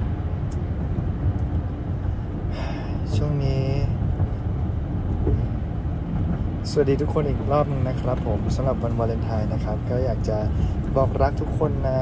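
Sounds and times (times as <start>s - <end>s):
car cabin rumble: 0.0s - 12.0s
man talking: 3.0s - 4.0s, 6.6s - 12.0s.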